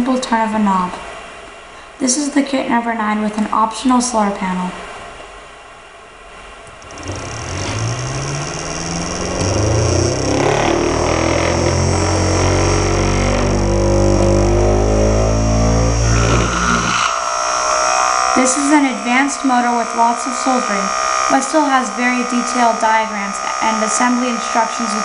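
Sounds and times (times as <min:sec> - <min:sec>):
small electric motor whining: 0:06.7 - 0:25.0.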